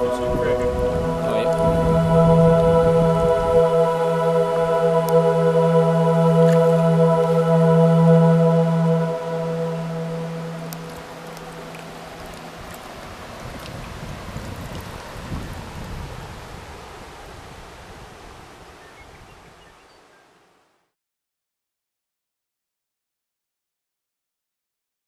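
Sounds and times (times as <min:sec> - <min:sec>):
sustained music chord: 0:00.0 - 0:13.3
river water running over stones: 0:08.6 - 0:20.7.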